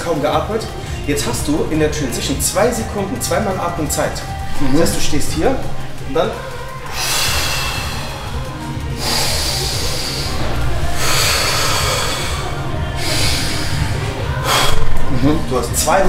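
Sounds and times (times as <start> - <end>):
background music: 0.0 - 16.0
man breathing deeply: 5.8 - 15.8.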